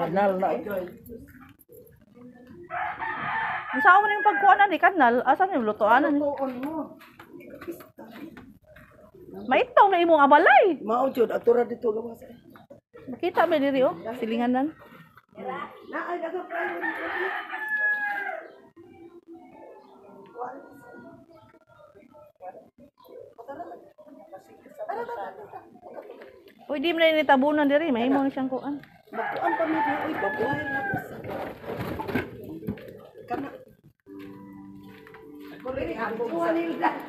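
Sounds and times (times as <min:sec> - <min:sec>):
rooster crowing: 0:02.7 - 0:04.7, 0:16.5 - 0:18.6, 0:29.1 - 0:31.2.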